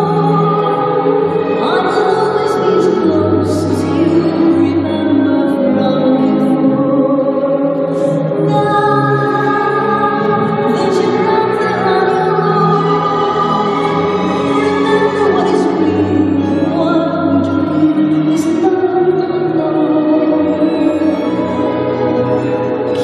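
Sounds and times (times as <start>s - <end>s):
choral operatic music: 0.0s - 23.0s.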